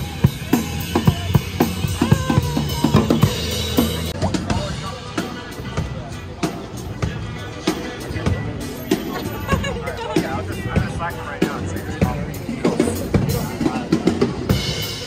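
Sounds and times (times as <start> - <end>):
acoustic drum kit playing: 0.0 - 15.0.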